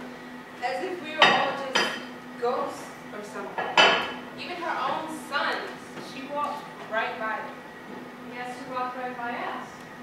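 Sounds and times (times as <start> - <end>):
plates clinking on wooden table: 3.6 - 4.2.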